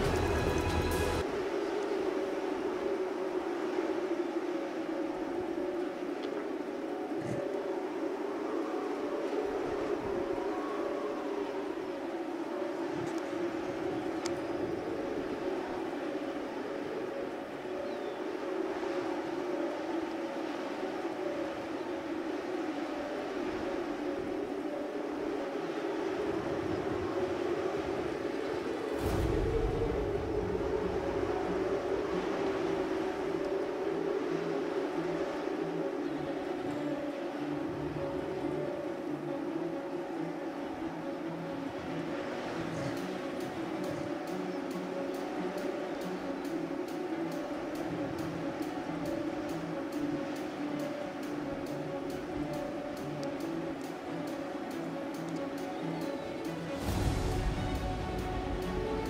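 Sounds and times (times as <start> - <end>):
engine-like drone: 0.0 - 1.4
deep rumble: 29.0 - 32.6.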